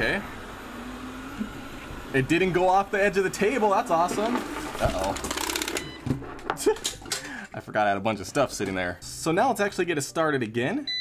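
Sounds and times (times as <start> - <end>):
robot vacuum motor whirring: 0.0 - 5.9.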